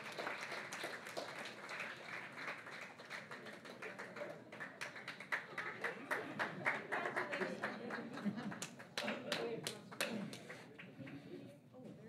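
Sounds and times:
audience clapping: 0.0 - 11.2
murmured talk: 5.5 - 12.0.

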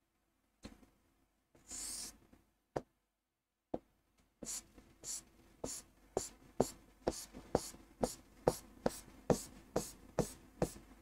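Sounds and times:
marker pen scratching on board: 1.7 - 2.2, 4.4 - 10.8.

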